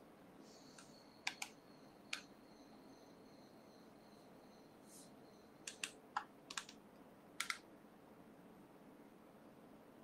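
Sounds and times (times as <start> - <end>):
computer keyboard key clicks: 1.2 - 1.5, 5.6 - 6.8, 7.4 - 7.6.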